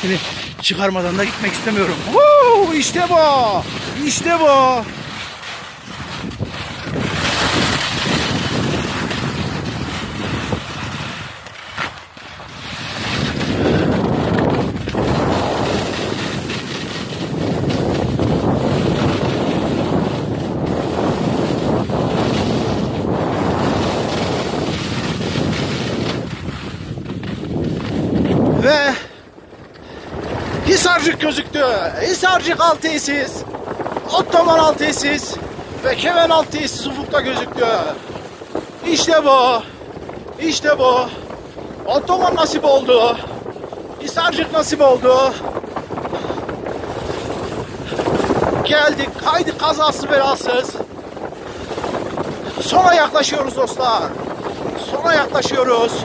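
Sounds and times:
person speaking: 0.0s - 4.9s, 30.6s - 33.4s, 34.0s - 38.0s
skis sliding on snow: 0.0s - 56.0s
wind buffeting microphone: 0.0s - 56.0s.

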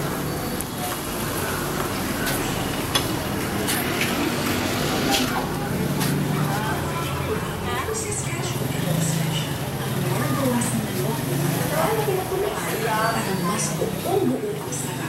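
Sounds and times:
indistinct voices: 0.0s - 15.0s
vehicle engine hum: 0.0s - 15.0s.

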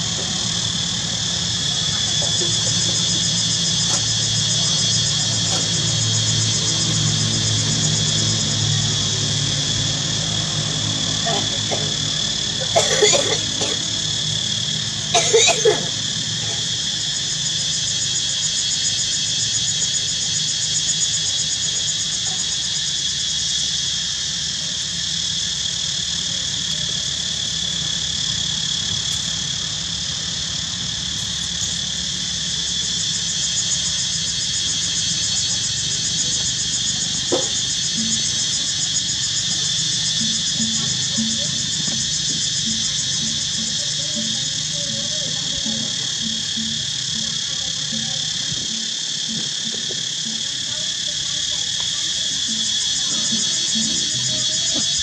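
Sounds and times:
insects chirping: 0.0s - 55.0s.

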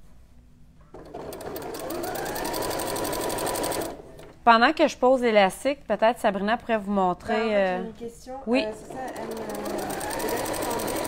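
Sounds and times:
sewing machine stitching: 0.9s - 4.4s, 8.6s - 11.0s.

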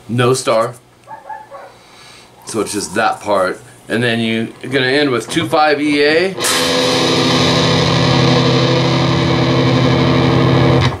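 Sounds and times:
distorted electric guitar: 5.1s - 11.0s.

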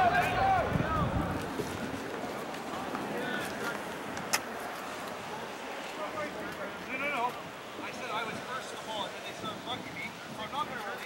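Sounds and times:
distant shouts of players: 0.0s - 1.5s
steady outdoor noise: 0.0s - 11.0s.

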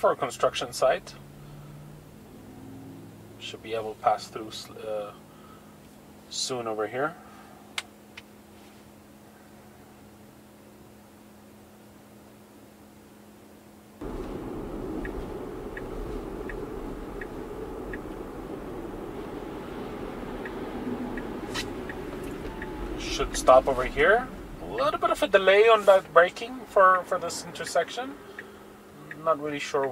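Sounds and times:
car cabin hum: 14.0s - 29.9s
tyre and road noise: 14.0s - 29.9s
faint regular ticks: 28.3s - 29.9s.

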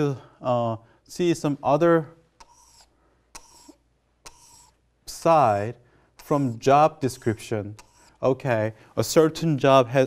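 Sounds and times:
stylus tapping and scratching touchscreen: 1.7s - 5.6s, 6.2s - 8.4s.

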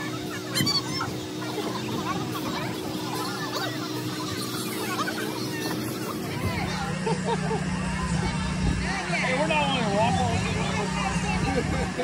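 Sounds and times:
children's voices chattering: 0.0s - 12.0s
steady hum: 0.0s - 12.0s.

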